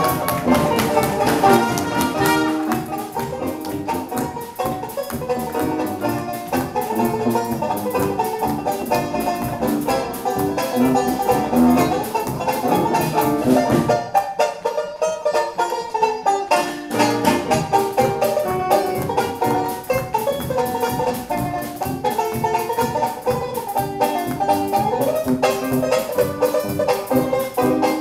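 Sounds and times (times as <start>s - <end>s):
saxophone: 0.0s - 4.1s
sousaphone bass: 0.0s - 14.2s, 16.8s - 28.0s
trumpet: 0.0s - 14.2s, 16.7s - 23.3s
drum kit: 0.0s - 14.7s, 16.5s - 28.0s
banjo: 0.0s - 28.0s
clarinet: 0.0s - 28.0s.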